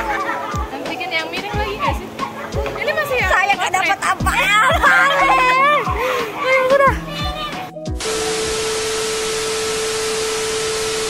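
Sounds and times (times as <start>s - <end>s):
television static hiss: 0.0s - 11.0s
steady tone: 8.0s - 11.0s.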